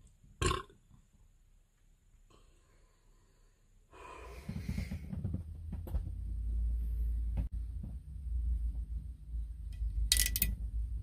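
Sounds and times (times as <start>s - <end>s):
man belching: 0.4s - 0.7s.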